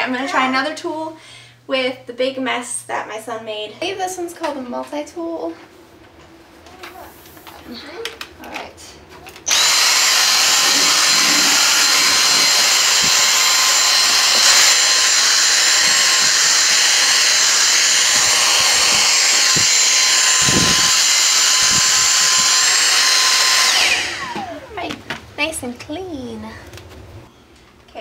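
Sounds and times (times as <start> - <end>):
vacuum cleaner motor whine: 9.3 - 25.6.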